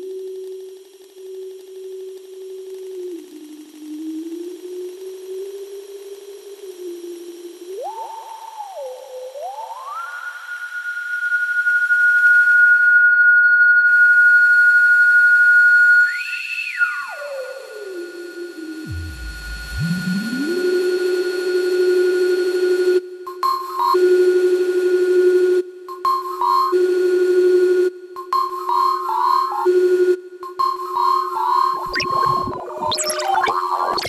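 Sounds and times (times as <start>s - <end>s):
electronic drone tone gliding: 31.7s - 34.0s.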